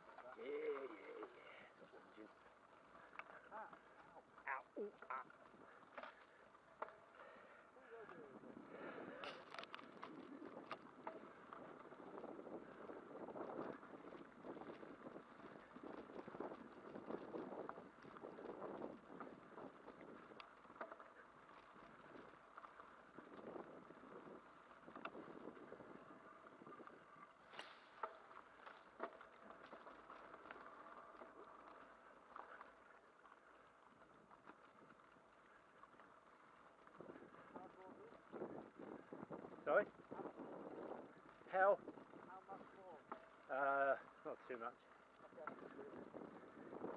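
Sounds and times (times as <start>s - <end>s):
bicycle rolling and rattling: 0.0s - 46.9s.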